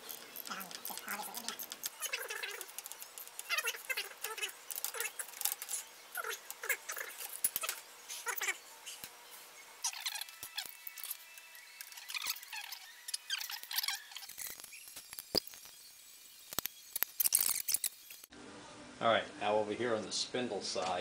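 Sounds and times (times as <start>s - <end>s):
metal tools clinking and scraping: 0.0s - 8.3s, 16.6s - 18.3s.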